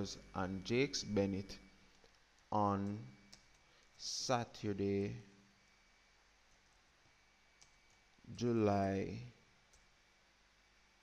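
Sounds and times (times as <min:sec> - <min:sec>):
faint keyboard clicks: 0:07.6 - 0:08.1.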